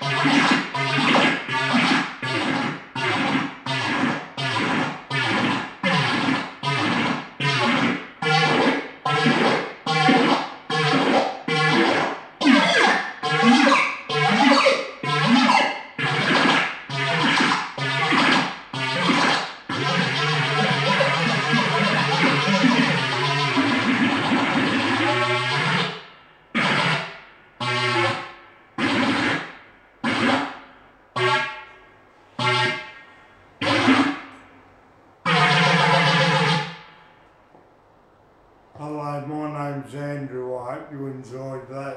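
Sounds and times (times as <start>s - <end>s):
electronic synthesizer phrases: 0.0s - 26.0s, 38.8s - 41.9s.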